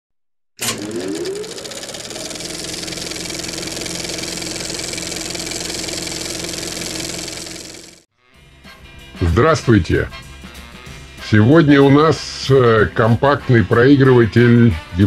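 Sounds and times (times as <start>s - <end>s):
film projector whirring and rattling: 0.6s - 8.0s.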